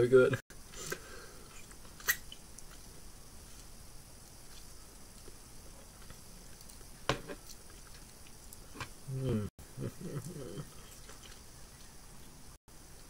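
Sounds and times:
person chewing: 3.5 - 9.5, 10.2 - 12.3.

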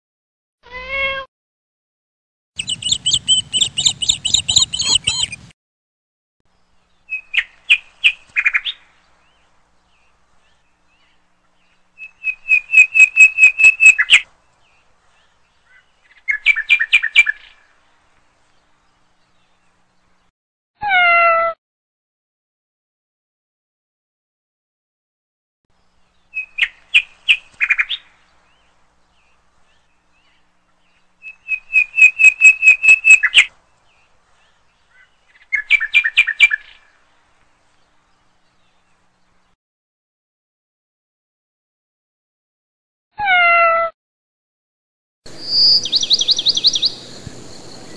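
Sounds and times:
bird chirping rapidly: 2.6 - 5.5, 6.8 - 9.0, 11.8 - 14.3, 15.6 - 17.6, 26.3 - 33.5, 34.9 - 36.9, 45.3 - 47.9.

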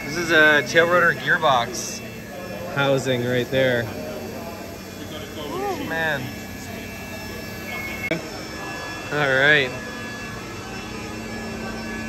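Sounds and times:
milling machine whine: 0.0 - 12.0.

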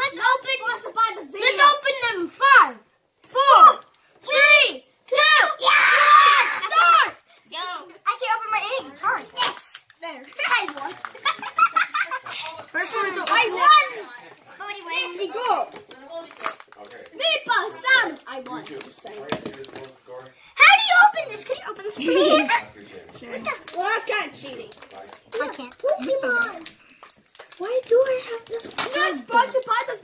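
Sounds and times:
children chattering and exclaiming: 0.0 - 19.4, 20.5 - 30.0
wrappers crinkling: 23.5 - 29.7.

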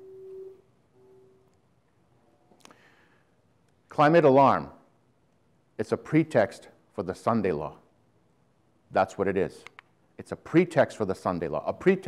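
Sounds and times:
faint steady tone: 0.0 - 3.5
quiet room noise: 0.0 - 12.0.

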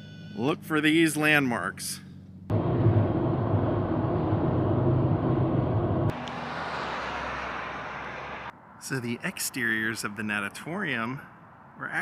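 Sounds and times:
loud outdoor rumble: 2.2 - 8.5.

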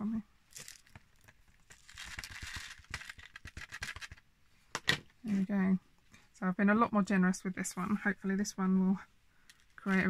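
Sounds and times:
confetti pieces clicking: 1.7 - 4.2
confetti rattling against plastic: 1.7 - 4.2.

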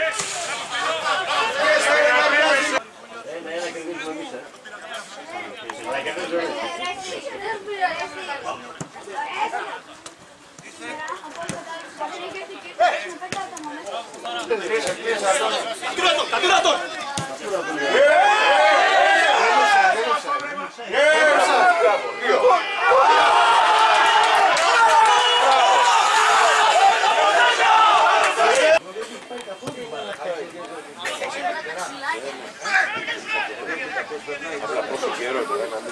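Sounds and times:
crowd shouting: 0.0 - 2.9, 14.5 - 28.9, 31.2 - 35.5.

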